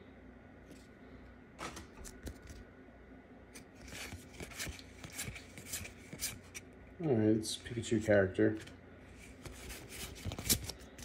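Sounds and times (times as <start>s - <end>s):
trading cards clicking and swishing: 3.6s - 6.7s, 8.6s - 11.0s.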